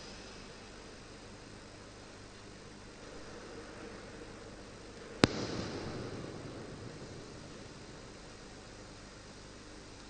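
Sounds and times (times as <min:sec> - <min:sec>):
faint steady hiss: 0:00.0 - 0:10.0
sharp bang with echo: 0:05.2 - 0:09.0.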